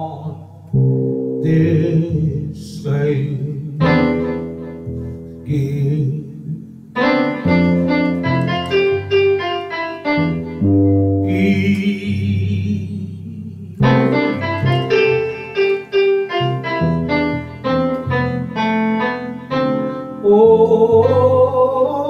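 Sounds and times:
electronic keyboards playing: 3.8 - 5.5, 6.5 - 12.5, 13.7 - 21.6.

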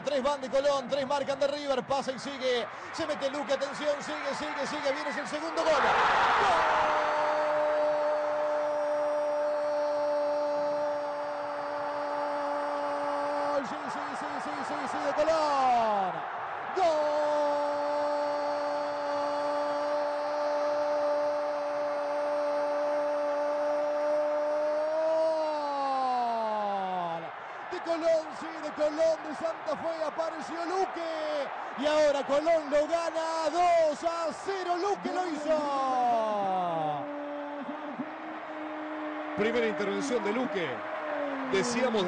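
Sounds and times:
crowd noise: 0.0 - 9.5, 10.8 - 25.3, 25.9 - 42.0
commentator shouting goal: 0.0 - 38.5, 39.3 - 42.0.

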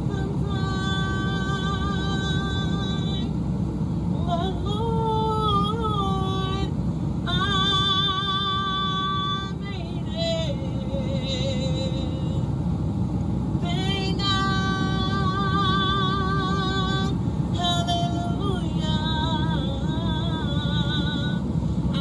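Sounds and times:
woman singing with vibrato: 0.0 - 3.4, 4.2 - 12.5, 13.6 - 22.0
steady low rumble: 0.0 - 22.0.

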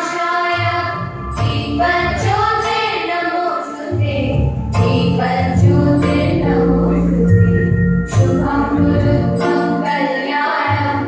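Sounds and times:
choral singing: 0.0 - 11.0.

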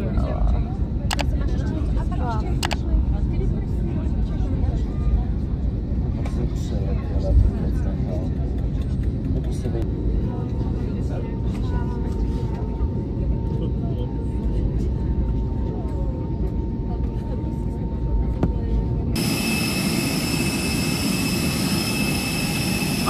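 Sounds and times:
aircraft cabin low rumble: 0.0 - 23.0.

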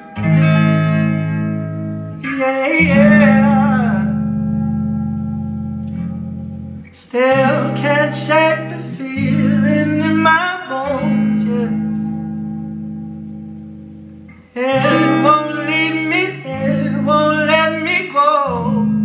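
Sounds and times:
electric guitar chords ringing: 0.0 - 19.0
man singing: 2.2 - 4.4, 6.9 - 12.2, 14.4 - 19.0.

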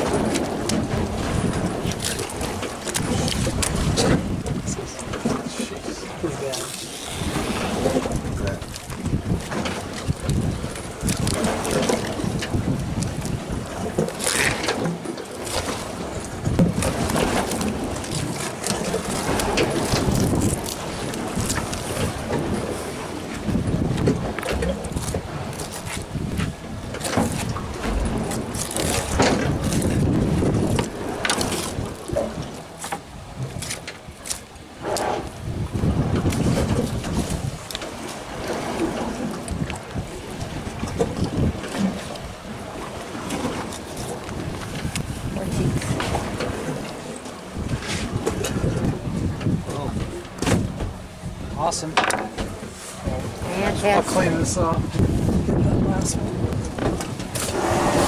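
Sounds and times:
water moving around boat: 0.0 - 58.0
wind on microphone: 0.0 - 58.0.

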